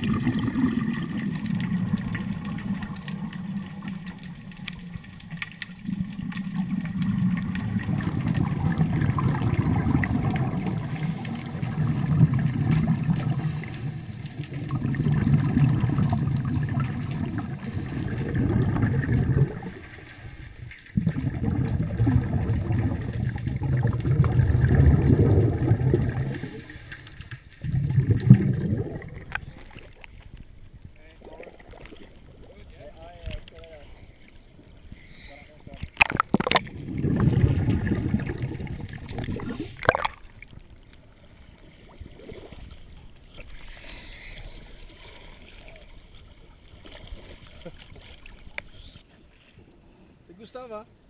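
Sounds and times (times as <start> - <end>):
water burbling and sloshing: 0.0 - 50.8.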